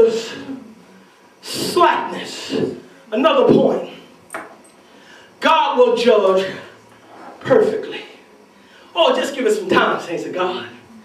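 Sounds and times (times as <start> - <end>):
man preaching into a microphone: 0.0 - 0.5, 1.4 - 4.1, 5.4 - 6.8, 7.4 - 8.2, 8.9 - 10.8.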